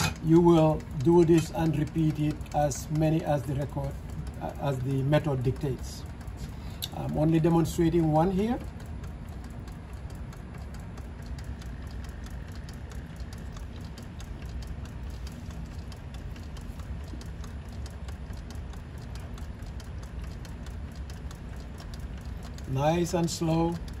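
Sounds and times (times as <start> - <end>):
peristaltic pump ticking: 0.0 - 24.0
pump low hum: 0.0 - 24.0.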